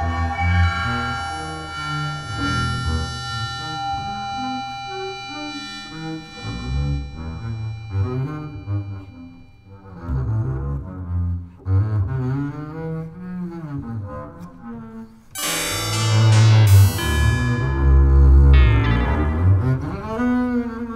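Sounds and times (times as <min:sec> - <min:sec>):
sustained high electronic tones: 0:00.0 - 0:10.3, 0:15.4 - 0:20.9
double bass short low notes: 0:15.8 - 0:20.9.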